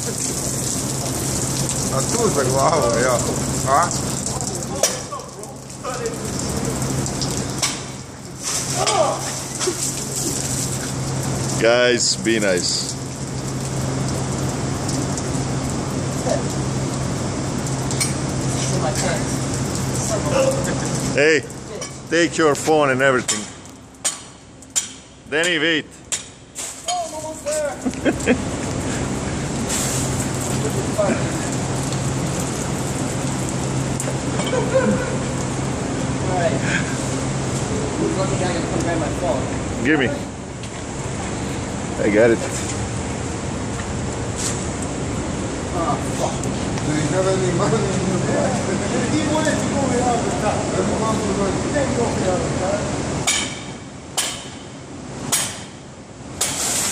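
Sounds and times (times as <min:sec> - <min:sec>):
water gushing and splashing: 0:00.0 - 0:25.3, 0:26.3 - 0:56.9
steady low hum: 0:27.7 - 0:56.5.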